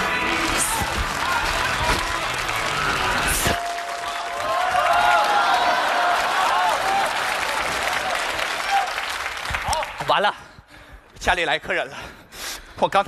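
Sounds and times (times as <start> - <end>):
crowd shouting: 0.0 - 8.9
audience applauding: 0.0 - 10.3.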